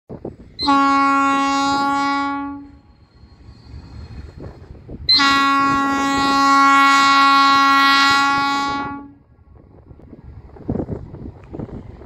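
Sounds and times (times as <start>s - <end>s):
freight train rumble: 0.1s - 12.0s
locomotive air horn blast: 0.6s - 2.9s, 5.1s - 9.3s.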